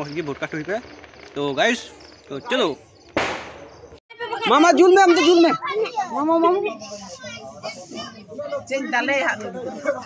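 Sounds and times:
children chattering: 3.6s - 10.0s.

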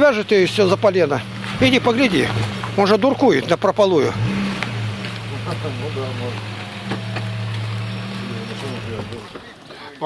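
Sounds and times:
car engine idling: 0.0s - 9.6s.

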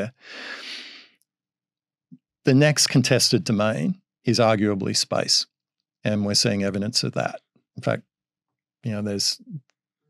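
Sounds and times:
man breathing into microphone: 0.2s - 1.1s.

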